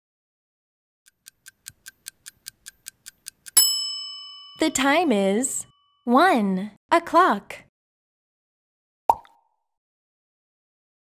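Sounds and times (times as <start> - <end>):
clock ticking: 1.1 - 3.6
bright chime ringing: 3.6 - 6.1.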